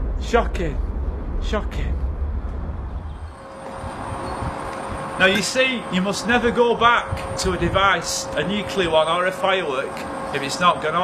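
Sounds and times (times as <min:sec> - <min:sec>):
deep low rumble: 0:00.0 - 0:08.4.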